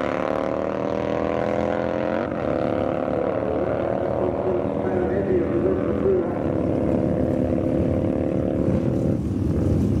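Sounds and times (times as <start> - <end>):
motorcycle engines running: 0.0 - 10.0.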